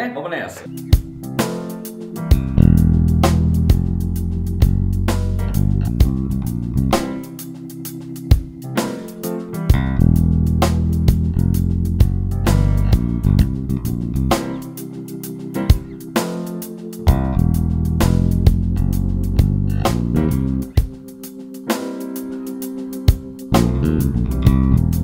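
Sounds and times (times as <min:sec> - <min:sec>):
drum backing track: 0:00.6 - 0:25.0
electric bass groove: 0:00.7 - 0:25.0.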